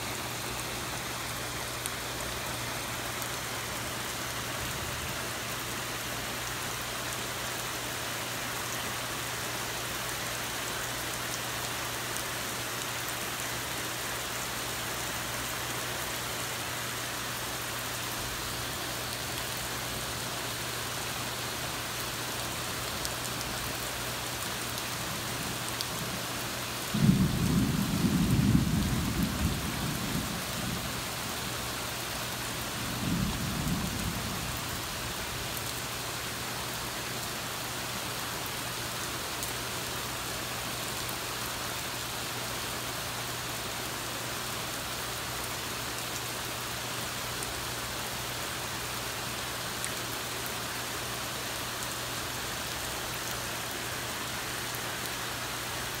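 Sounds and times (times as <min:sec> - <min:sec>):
heavy rain: 0:00.0 - 0:56.0.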